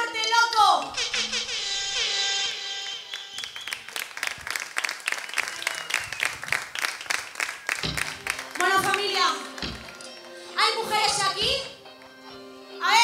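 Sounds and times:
audience applauding: 2.9s - 10.4s.

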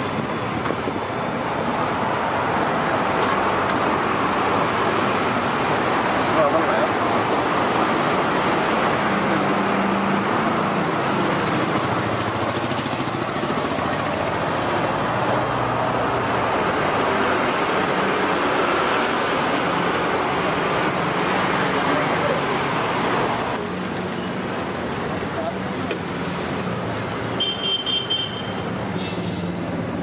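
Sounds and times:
road traffic: 0.0s - 30.0s.

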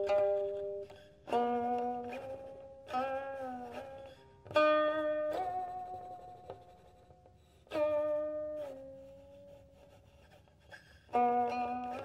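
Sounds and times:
plucked zither strings: 0.0s - 9.4s, 11.1s - 12.0s.

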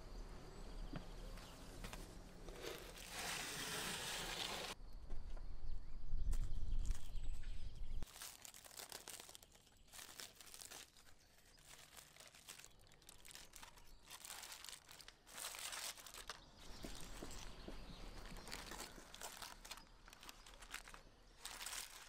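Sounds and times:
aluminium foil crinkling: 2.5s - 4.8s, 8.0s - 17.4s, 18.1s - 22.0s.

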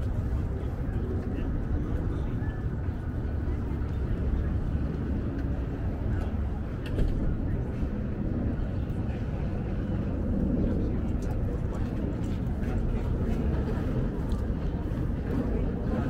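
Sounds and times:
low urban rumble: 0.0s - 16.0s.

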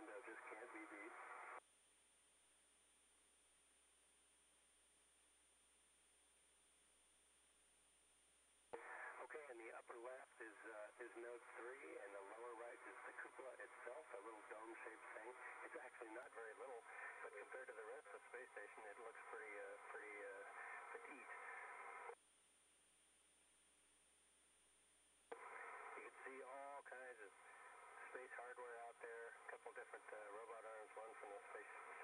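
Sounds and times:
voice over radio link: 0.0s - 1.4s, 8.8s - 22.2s, 25.3s - 32.0s.

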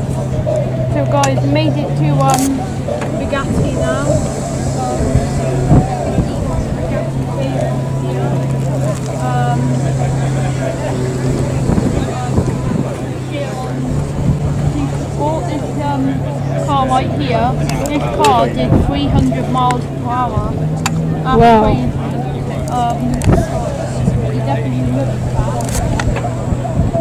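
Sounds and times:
people chattering: 0.0s - 27.0s
steady low hum: 0.0s - 27.0s.

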